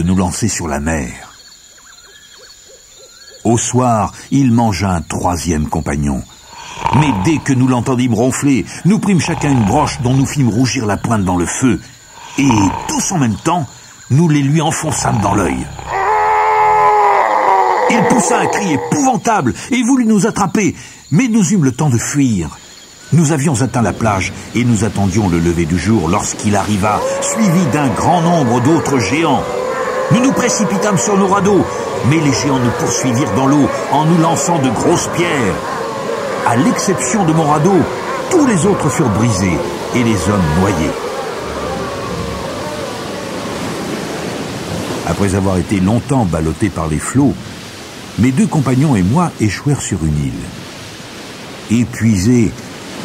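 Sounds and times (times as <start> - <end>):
giant screaming in pain: 6.6 - 7.7, 14.9 - 19.2, 26.7 - 44.3
waves washing: 23.0 - 53.0.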